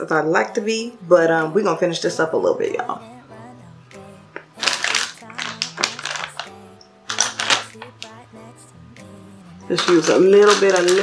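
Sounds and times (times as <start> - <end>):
background music: 0.0 - 11.0
plastic containers rattling: 4.6 - 6.5, 7.1 - 8.1, 9.7 - 11.0.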